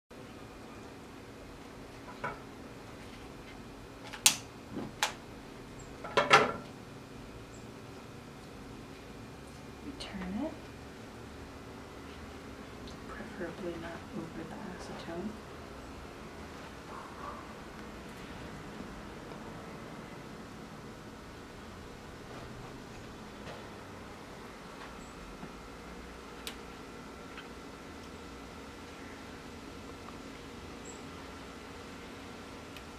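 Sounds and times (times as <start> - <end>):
steady background noise: 0.2 - 32.9.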